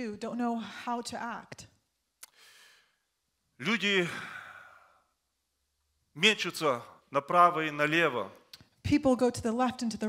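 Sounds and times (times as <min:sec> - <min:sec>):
man sighing: 0:04.0 - 0:05.1.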